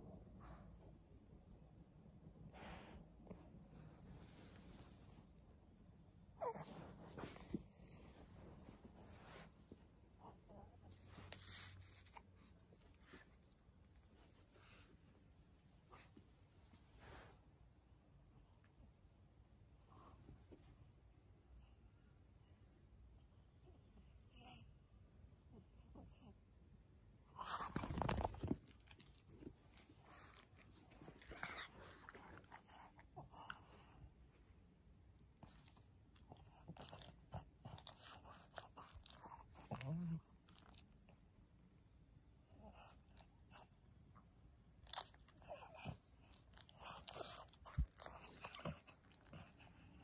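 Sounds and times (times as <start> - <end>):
dog chewing and smacking: 44.8 - 50.0.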